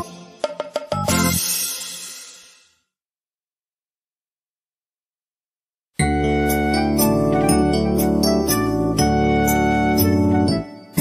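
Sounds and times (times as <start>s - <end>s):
cymbal crash and chord: 1.1s - 2.9s.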